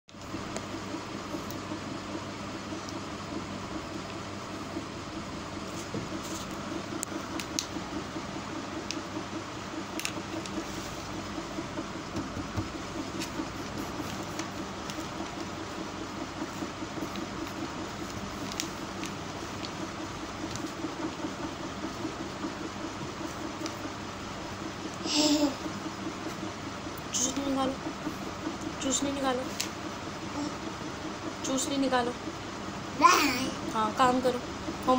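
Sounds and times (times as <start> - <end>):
mechanical hum: 0.1 - 34.9.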